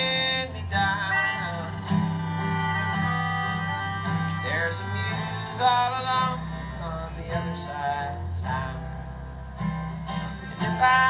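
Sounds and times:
held melody notes: 0.0s - 7.5s
acoustic guitar: 0.0s - 11.0s
upright bass: 0.0s - 11.0s.

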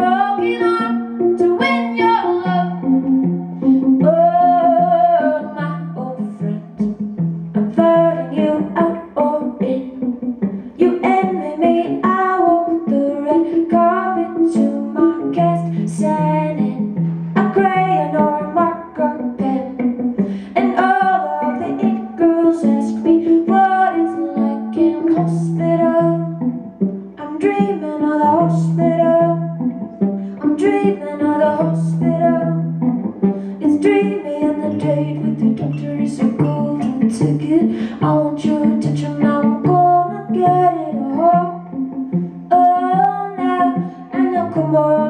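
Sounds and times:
woman singing: 0.0s - 32.9s, 33.5s - 45.0s
picked electric guitar: 0.0s - 45.0s.

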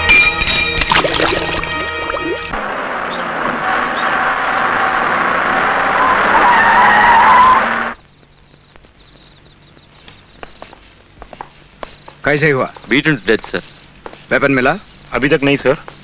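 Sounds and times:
engine and tyre noise: 1.8s - 12.2s
vehicle skidding on dirt: 2.5s - 8.0s
brake squeal: 2.6s - 8.0s.

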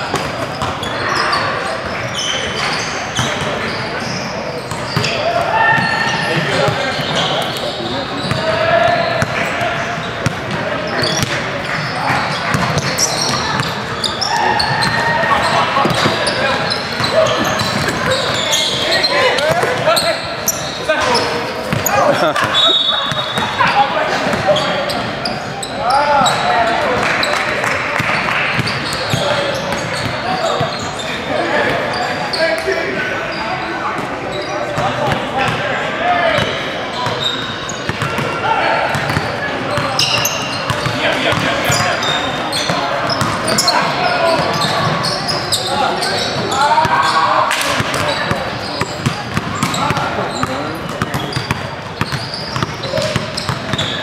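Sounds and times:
players calling out: 0.0s - 54.0s
basketballs bouncing on hardwood floor: 17.0s - 18.4s, 48.8s - 53.9s.

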